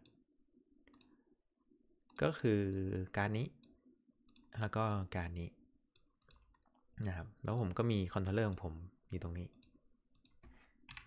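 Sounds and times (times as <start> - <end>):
person speaking: 7.0 - 9.6
faint computer mouse clicks: 9.5 - 11.0.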